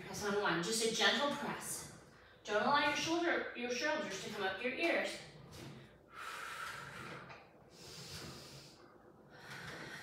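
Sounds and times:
woman breathing with exertion: 5.7 - 10.0.

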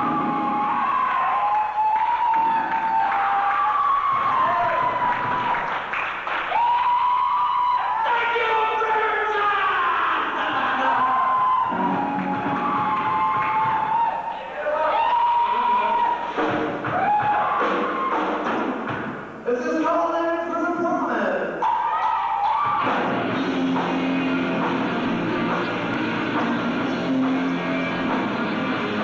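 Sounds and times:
hard rock band playing live: 22.8 - 29.0
sliding lead guitar notes: 22.9 - 29.0.

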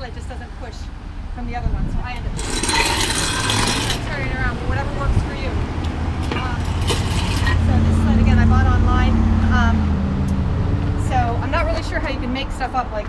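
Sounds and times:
woman talking: 0.0 - 3.2, 4.0 - 5.7, 6.3 - 6.7, 7.3 - 9.9, 11.0 - 13.0
vehicle engine passing: 2.3 - 12.6.

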